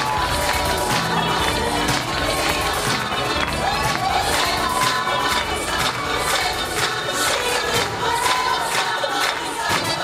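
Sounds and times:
audience cheering and screaming: 0.0s - 2.0s, 2.8s - 6.6s, 7.7s - 9.2s
band playing music: 0.0s - 8.5s.

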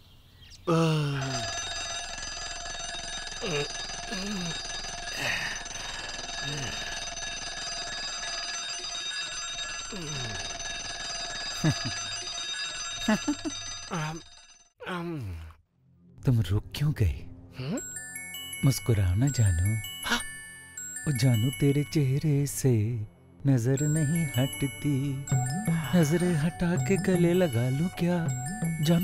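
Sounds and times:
alarm clock bell ringing: 1.2s - 14.8s, 17.8s - 22.8s, 23.7s - 29.0s.

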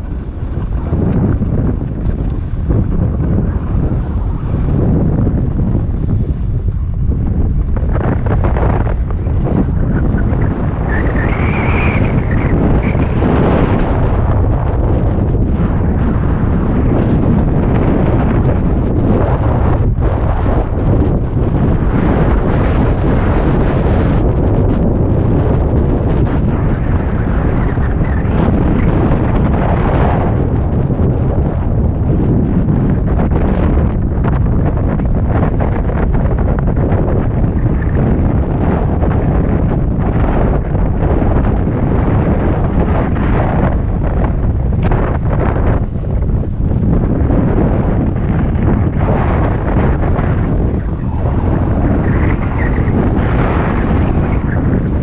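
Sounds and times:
snowboard scraping over snow: 0.0s - 55.0s
wind buffeting microphone: 0.0s - 55.0s.

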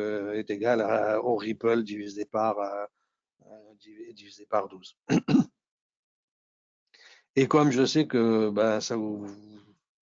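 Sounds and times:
man clearing his throat: 5.1s - 5.5s.

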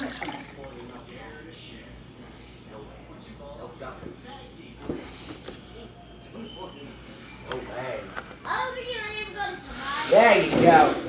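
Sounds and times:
milk pouring into a glass: 0.0s - 1.1s.

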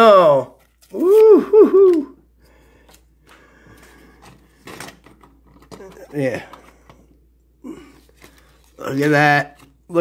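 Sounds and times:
cardboard cards rustling: 0.2s - 7.1s, 7.9s - 10.0s.

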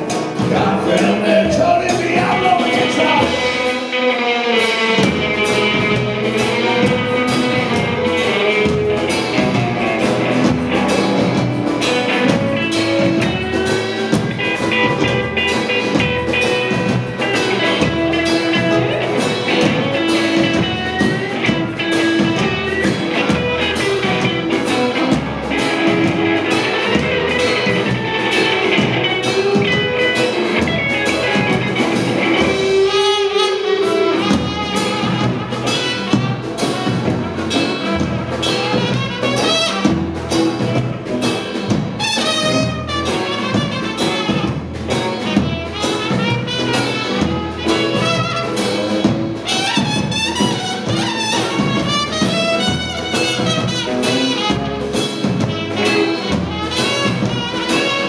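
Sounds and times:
brass section: 0.0s - 58.0s
live rock and roll band: 0.0s - 58.0s.

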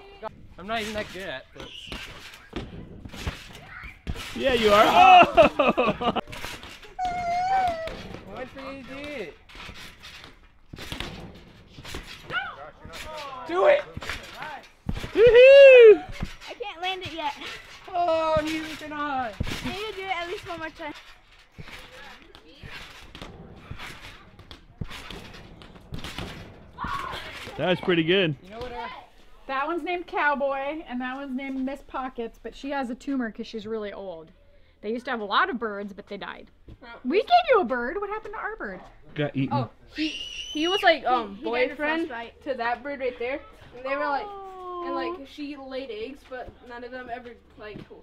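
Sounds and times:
feet thumping on trampoline: 0.8s - 27.8s.

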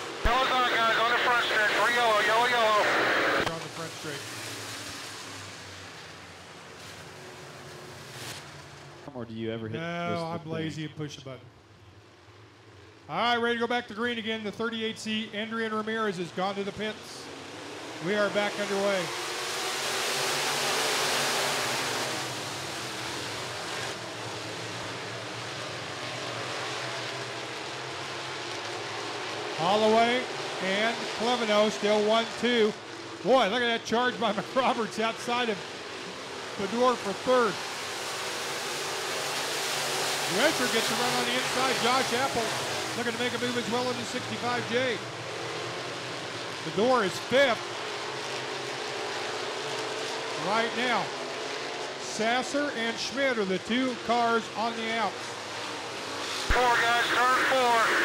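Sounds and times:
grandstand crowd ambience: 0.0s - 3.9s, 56.4s - 58.0s
race car engines droning: 0.0s - 58.0s
man speaking: 0.2s - 4.2s, 9.1s - 11.5s, 13.1s - 17.3s, 18.0s - 19.1s, 29.6s - 35.6s, 36.6s - 37.6s, 40.3s - 45.0s, 50.4s - 51.1s, 56.5s - 58.0s.

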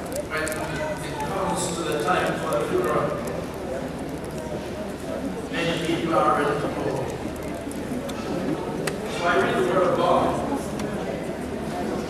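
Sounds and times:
man preaching over microphone: 0.3s - 3.2s, 5.5s - 7.0s.

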